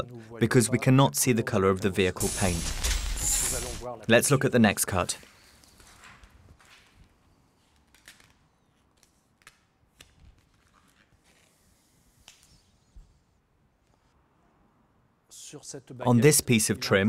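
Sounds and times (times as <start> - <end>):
wrap film rustling and clicking: 5.5 - 12.7.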